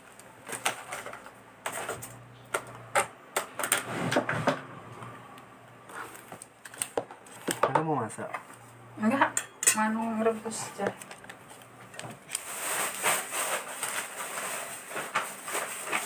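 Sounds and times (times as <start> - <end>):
clicks and taps of small objects: 10.8 - 12.4.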